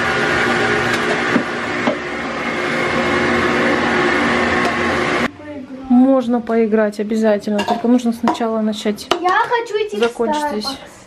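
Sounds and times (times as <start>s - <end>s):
vacuum cleaner running: 0.0s - 6.7s.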